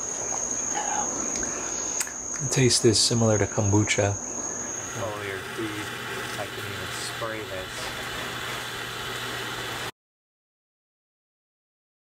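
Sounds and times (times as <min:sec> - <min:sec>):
garden hose spraying water: 0:00.0 - 0:09.9.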